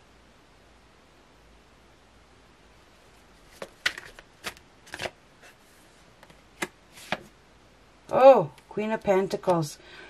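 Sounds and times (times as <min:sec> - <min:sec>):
faint card rustling: 0:03.4 - 0:07.4
cards snapping: 0:03.6 - 0:05.2.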